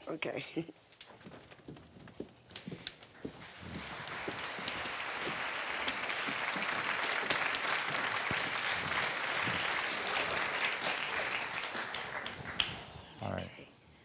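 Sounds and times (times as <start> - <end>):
studio audience applauding: 3.1 - 13.1.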